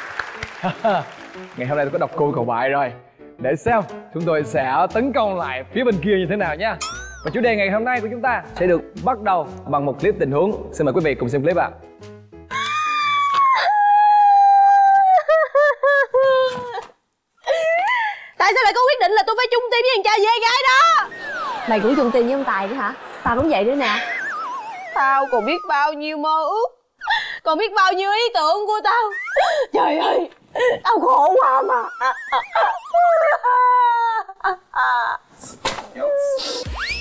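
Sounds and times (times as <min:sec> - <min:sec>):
woman wailing and sobbing: 0:12.5 - 0:18.3, 0:23.8 - 0:26.3, 0:28.8 - 0:35.3, 0:36.0 - 0:36.6.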